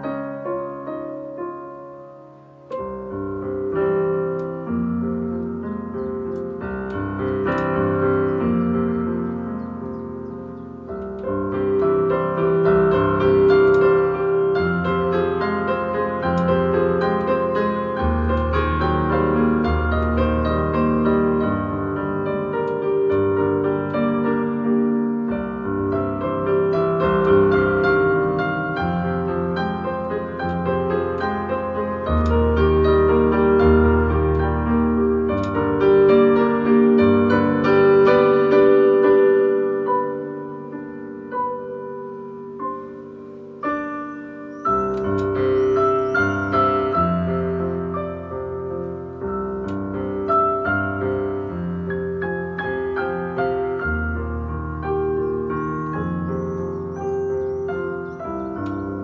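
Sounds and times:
solo piano melody: 0:00.0 - 0:59.0.

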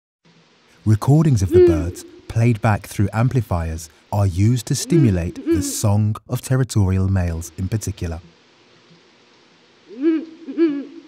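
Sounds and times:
owl hoots from a loudspeaker: 0:01.4 - 0:02.3, 0:04.8 - 0:05.8, 0:09.9 - 0:11.0.

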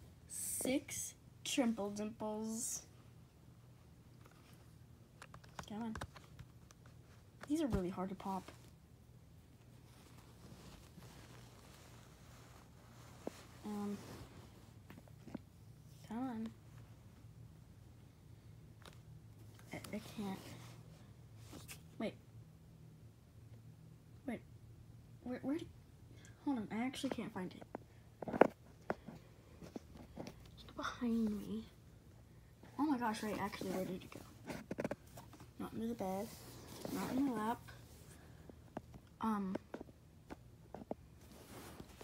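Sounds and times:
faint low room hum: 0:00.0 - 0:42.0.

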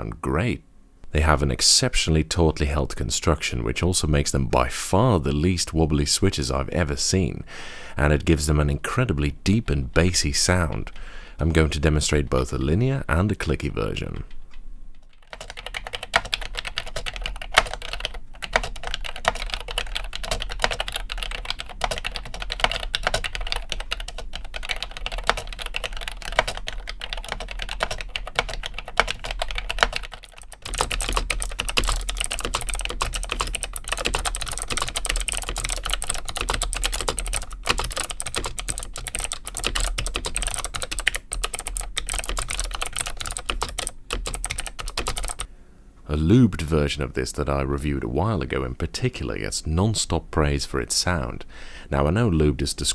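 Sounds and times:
mechanical keyboard typing: 0:15.1 - 0:45.5.

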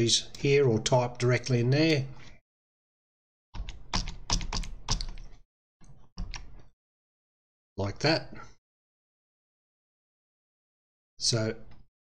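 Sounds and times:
computer keyboard typing: 0:03.6 - 0:05.3.

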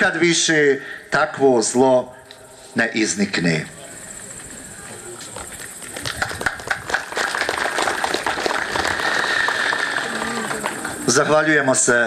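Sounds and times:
audience applause: 0:05.8 - 0:11.8.

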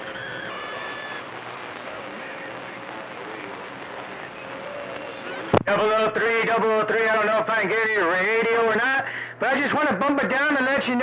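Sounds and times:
radio static hiss: 0:00.0 - 0:11.0
garbled distant voices: 0:00.3 - 0:05.6.

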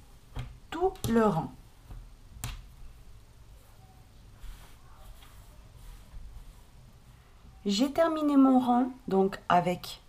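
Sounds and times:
hands rustling fabric: 0:01.2 - 0:08.0.

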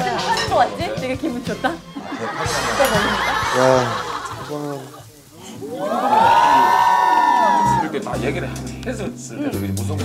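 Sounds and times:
people laughing and talking: 0:00.0 - 0:08.7
background music: 0:00.0 - 0:10.0.

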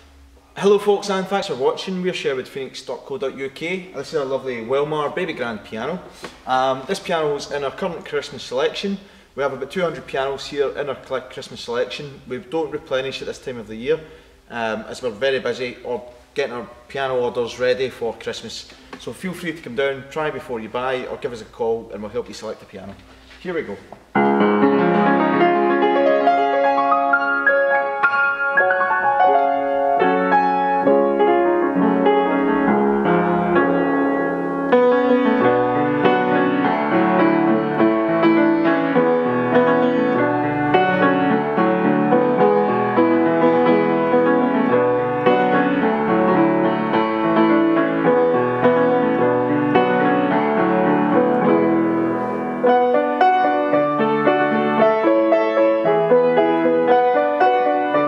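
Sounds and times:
piano playing: 0:24.0 - 0:58.0.

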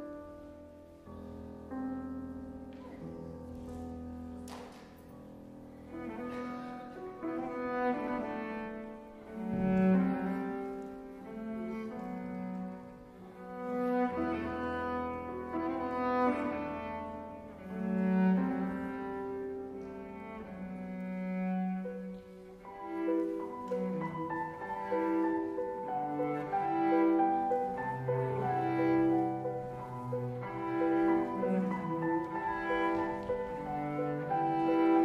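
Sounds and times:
piano held notes: 0:00.0 - 0:35.0
cello sustained notes: 0:05.2 - 0:35.0.

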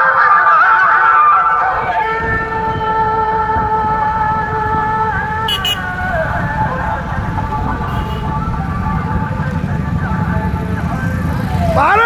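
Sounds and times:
motorcycle engines rumbling: 0:00.0 - 0:12.0.

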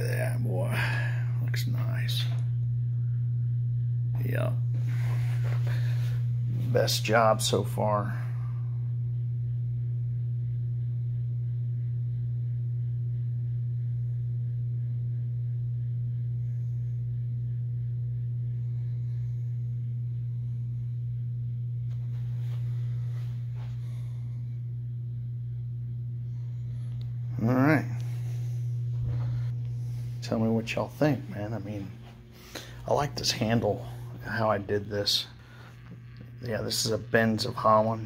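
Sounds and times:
steady low electric hum: 0:00.0 - 0:38.0.

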